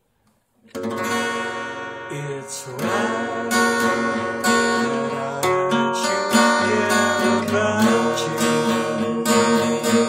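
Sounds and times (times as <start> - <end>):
acoustic guitar strumming: 0.6 - 10.0.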